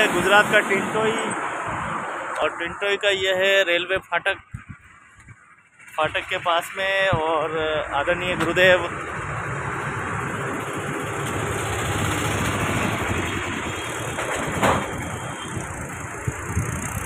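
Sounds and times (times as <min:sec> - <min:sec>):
highway traffic passing: 0:00.0 - 0:17.0.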